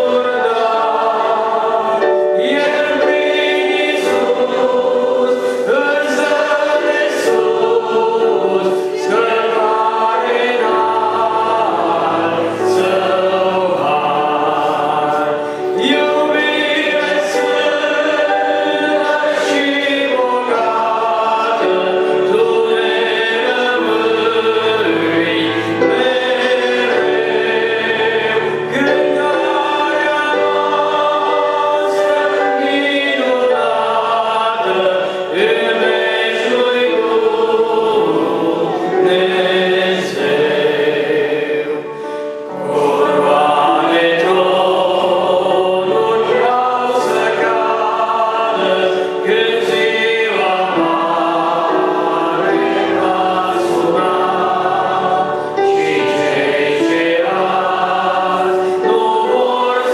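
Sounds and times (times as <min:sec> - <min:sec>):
musical accompaniment: 0:00.0 - 0:59.9.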